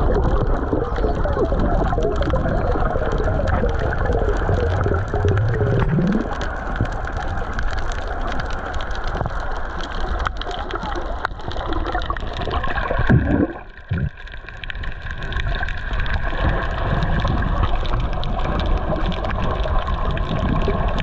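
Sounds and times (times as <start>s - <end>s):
small crackling clicks: 0.0s - 21.0s
underwater water churn and bubbling: 0.0s - 21.0s.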